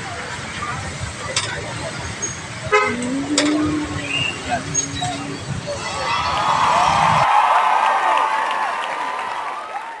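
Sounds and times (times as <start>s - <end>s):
street traffic: 0.0s - 7.3s
steady low tone: 2.6s - 5.9s
vehicle horn toot: 2.7s - 6.1s.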